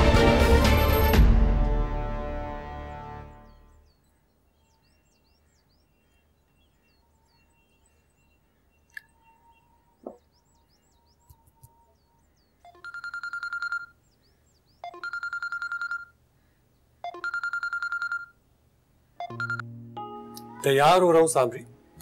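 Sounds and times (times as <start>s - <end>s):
mobile phone ringtone trilling: 12.6s - 14.0s, 14.8s - 16.2s, 17.0s - 18.4s, 19.2s - 19.7s.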